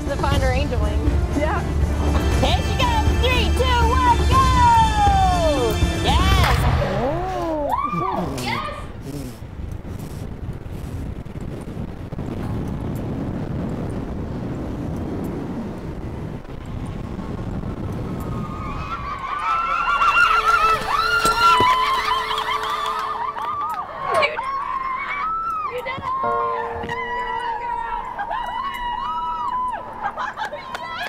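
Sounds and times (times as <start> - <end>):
wind rushing over microphone: 0.0 - 22.4
high-pitched shrieks and whoops: 7.2 - 8.9, 18.2 - 30.1.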